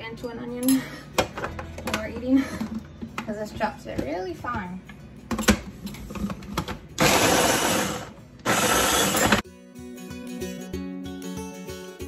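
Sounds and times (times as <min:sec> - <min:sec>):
background music with steady beat: 0:00.0 - 0:12.0
food chopper motor running: 0:07.0 - 0:09.4.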